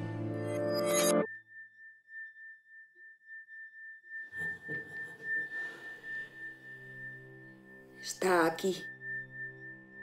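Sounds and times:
high pure ringing tone: 0.7s - 10.0s
low rising drone: 4.3s - 8.1s.

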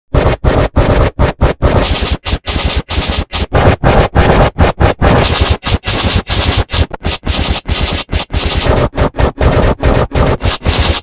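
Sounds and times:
harsh distorted noise bursts: 0.1s - 11.0s.

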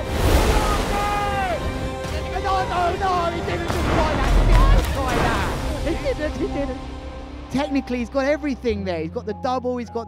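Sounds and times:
ocean surf washing in: 0.0s - 2.0s, 3.7s - 6.3s
music: 0.0s - 10.0s.

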